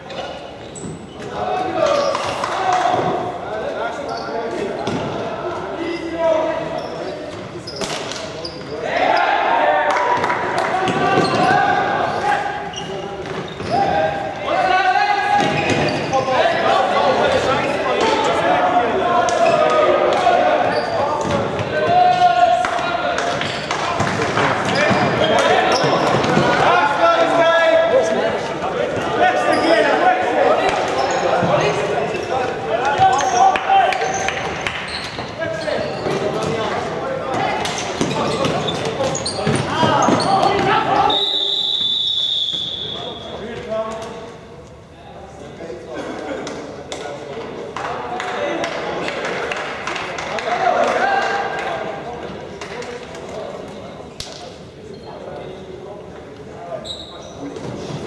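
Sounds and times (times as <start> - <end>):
players calling and shouting: 0.0 - 44.5.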